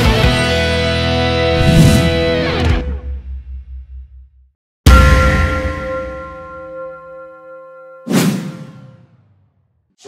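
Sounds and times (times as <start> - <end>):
loud whoosh hit: 1.6 - 2.4.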